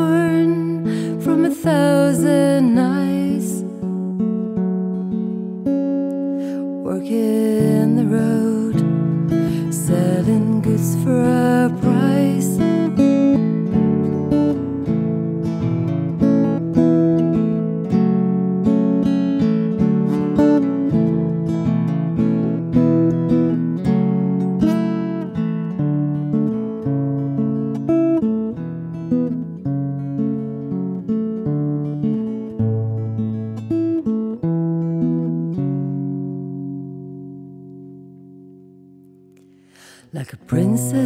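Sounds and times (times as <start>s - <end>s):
acoustic guitar playing: 0.0s - 41.0s.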